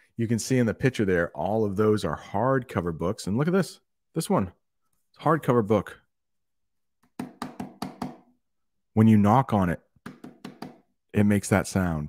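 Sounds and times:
knuckles knocking on a book cover: 7.1 - 8.3, 10.0 - 10.9.

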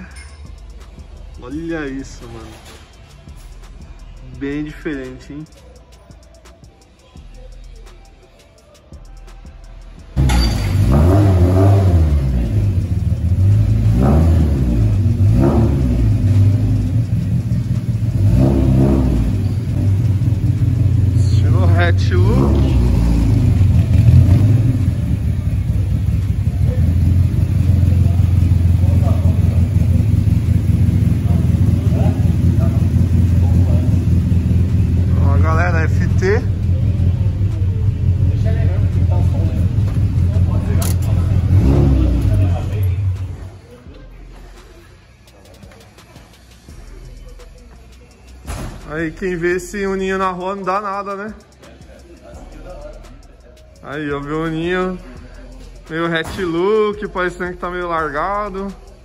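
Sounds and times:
car engine idling with throttle blips: 9.0 - 43.7.

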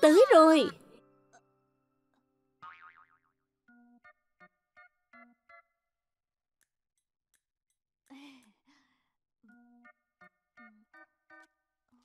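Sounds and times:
cartoon boing sound effect: 2.6 - 3.3.

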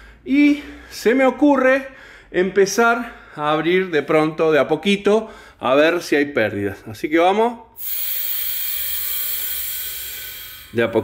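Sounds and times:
compressed air hissing: 7.8 - 11.0.

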